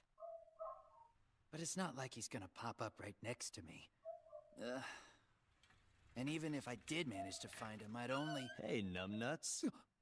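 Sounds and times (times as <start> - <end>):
person sighing: 4.6 - 5.2.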